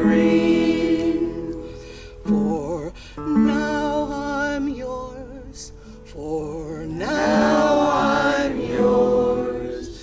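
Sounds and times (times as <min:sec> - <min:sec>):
acoustic guitar: 0:00.0 - 0:10.0
group of voices singing folk song: 0:00.0 - 0:10.0.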